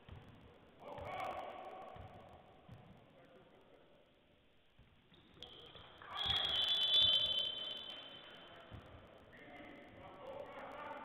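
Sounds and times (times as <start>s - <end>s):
referee's whistle blast: 6.2s - 8.2s.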